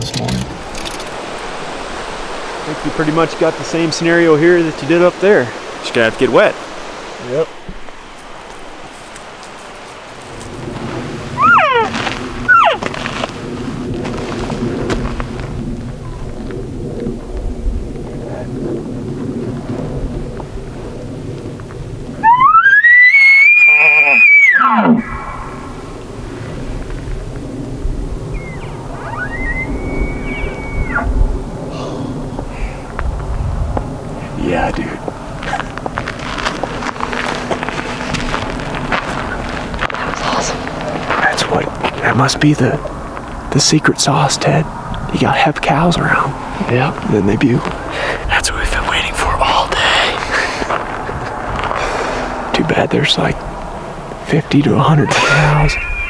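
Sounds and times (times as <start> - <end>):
elk bugling: 0.5 - 13.3, 17.2 - 33.0, 33.8 - 56.0.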